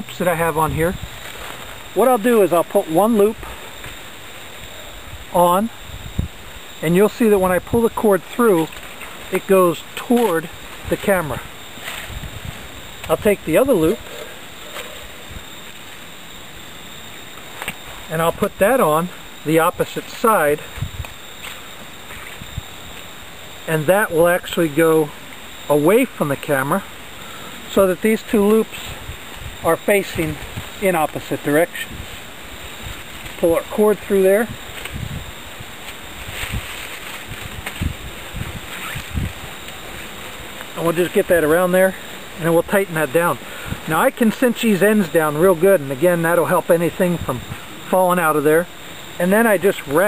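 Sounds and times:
outdoor background hiss: 0.0s - 50.0s
cord clicks and rustles: 29.2s - 40.8s.

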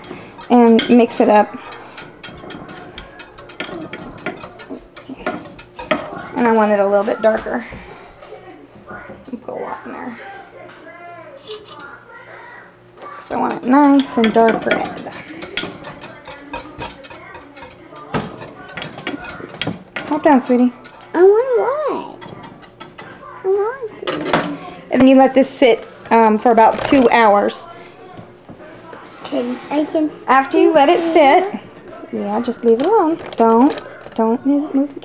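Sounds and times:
whisk stirring water: 0.0s - 7.4s, 13.0s - 21.4s, 22.2s - 23.3s
whisk wires rattling against glass: 0.0s - 7.4s, 13.1s - 21.2s, 22.2s - 23.3s.

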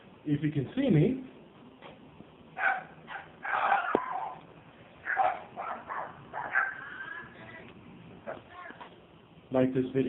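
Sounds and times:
pet animal calling: 2.6s - 7.6s.

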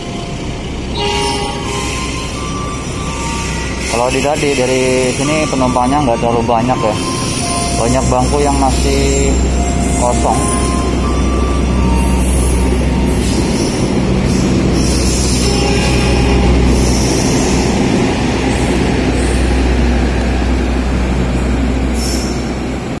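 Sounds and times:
train wheels rumbling on rail: 0.0s - 23.0s
wheels squealing: 0.8s - 20.6s, 21.3s - 22.8s.

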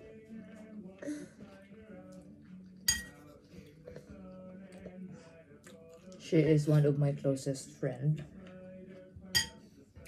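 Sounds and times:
metal fork clinking ceramic bowl: 2.8s - 3.3s, 9.3s - 9.7s.

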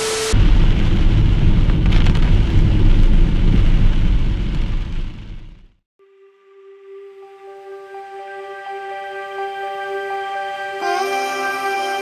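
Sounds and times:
heavy rain on a car: 0.0s - 5.6s
road and engine rumble: 0.0s - 5.8s.

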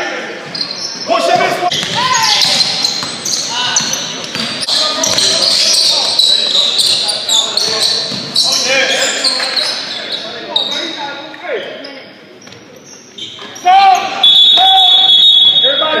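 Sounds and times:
players' voices: 0.0s - 16.0s
sneakers squeaking on hardwood: 0.4s - 11.0s, 12.4s - 14.7s
basketball bouncing: 1.7s - 5.7s
referee's whistle blast: 14.0s - 16.0s.

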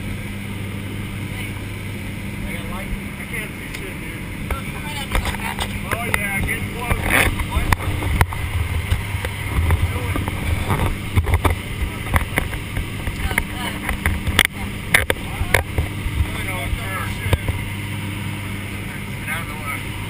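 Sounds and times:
aircraft engines and propellers droning: 0.0s - 20.0s
sharp clicks and knocks: 5.1s - 16.4s
rushing air: 7.6s - 11.9s.

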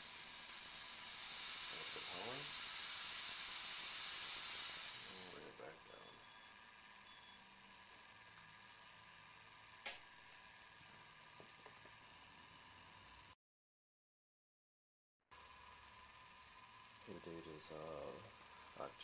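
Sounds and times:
high-voltage corona discharge hiss: 0.0s - 5.6s.

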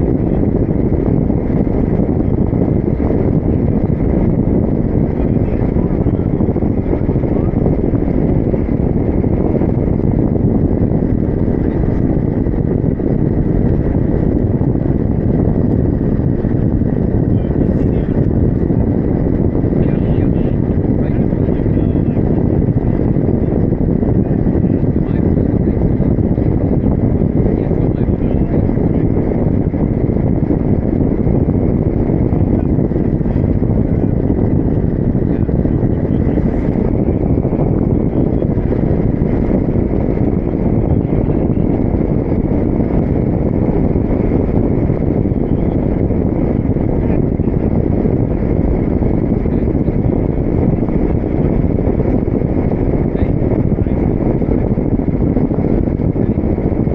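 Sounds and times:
wind rushing over microphone: 0.0s - 56.9s.

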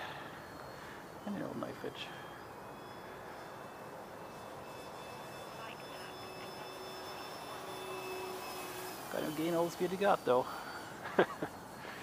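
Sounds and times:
faint steady tone: 0.0s - 12.0s
model plane motor humming: 0.0s - 12.0s.

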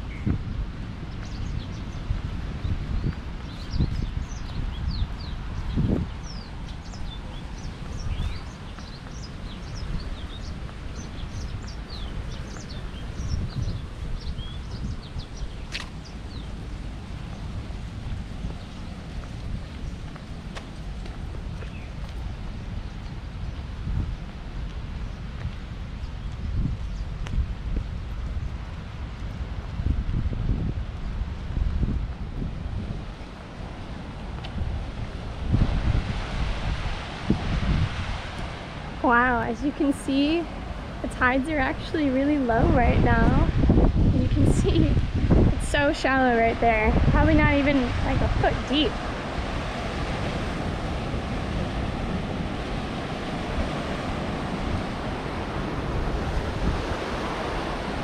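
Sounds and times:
wind rumbling on microphone: 0.0s - 58.0s
small birds chirping: 1.1s - 17.5s, 21.5s - 23.6s.

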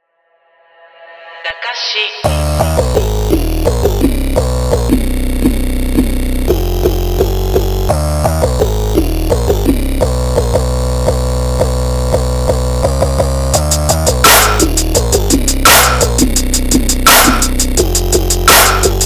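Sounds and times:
dark trap beat: 2.2s - 19.0s
heavy sustained bass: 2.3s - 19.0s
repeating synth notes: 2.3s - 19.0s.

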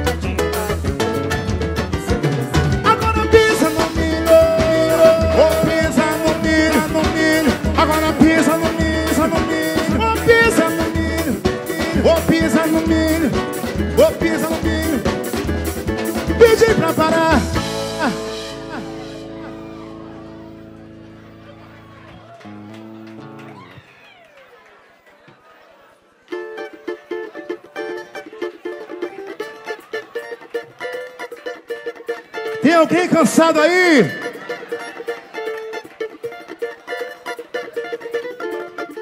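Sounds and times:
plucked string strumming: 0.0s - 23.6s, 26.3s - 39.0s
band holding chord: 2.8s - 11.6s, 12.8s - 23.6s
person calling out: 2.9s - 6.9s, 16.4s - 19.2s.

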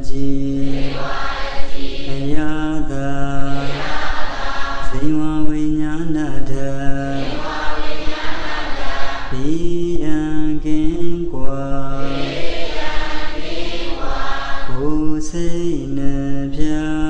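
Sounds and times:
monk chanting in deep voice: 0.0s - 3.9s, 4.8s - 7.8s, 9.3s - 13.0s, 14.6s - 17.0s.

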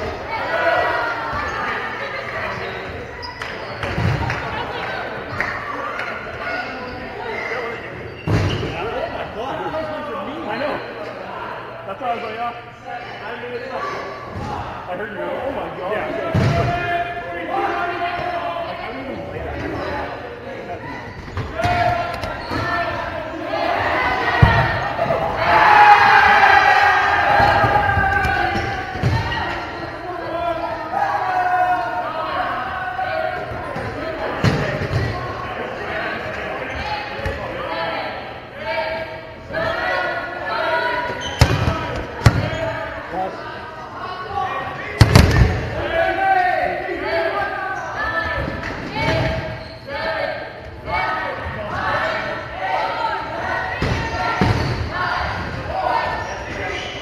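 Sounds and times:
dodgeballs smacking: 16.3s - 16.8s, 21.2s - 22.9s, 24.1s - 26.2s, 27.2s - 29.7s, 33.7s - 35.3s, 41.3s - 42.6s, 45.0s - 45.8s, 53.7s - 55.7s
players shouting: 20.8s - 57.0s.

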